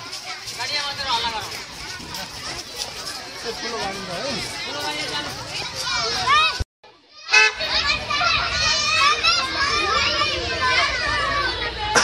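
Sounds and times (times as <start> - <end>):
children chattering and shouting: 0.0 - 12.0.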